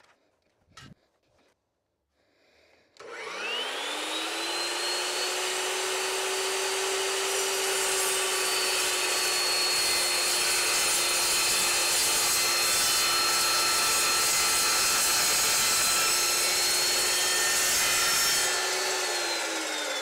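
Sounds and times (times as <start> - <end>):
chop saw motor spinning up: 3.0 - 20.0.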